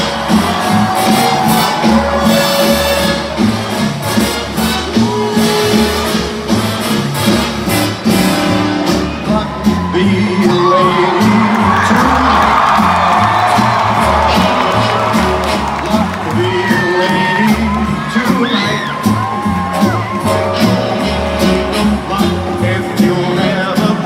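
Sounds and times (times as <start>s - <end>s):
crowd whoops: 0.0s - 3.5s, 9.4s - 22.7s
crowd cheering: 0.0s - 7.2s, 8.0s - 24.0s
live rock band playing: 0.0s - 24.0s.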